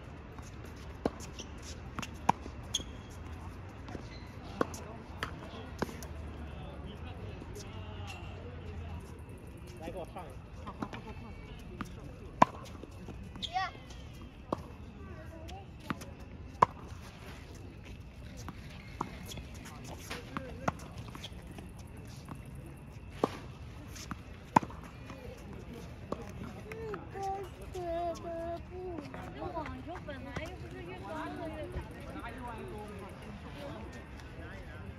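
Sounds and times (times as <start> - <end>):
tennis balls struck by rackets: 12.3 - 12.9, 23.0 - 27.0.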